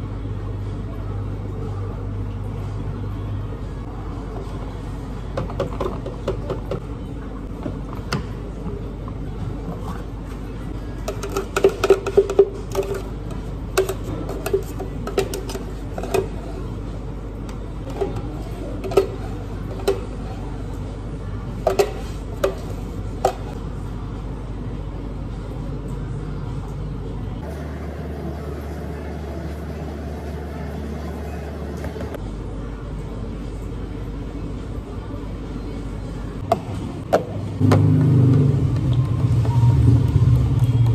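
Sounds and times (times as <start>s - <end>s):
steady background hum: 0.0s - 40.9s.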